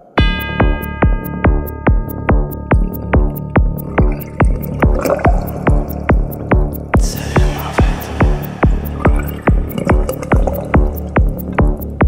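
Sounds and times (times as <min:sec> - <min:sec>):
psychedelic trance music: 0:00.2 - 0:12.0.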